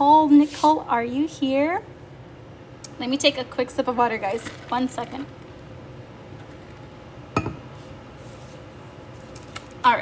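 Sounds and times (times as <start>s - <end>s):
faint room hum: 0.0s - 10.0s
glass clinking when set down: 7.3s - 7.7s.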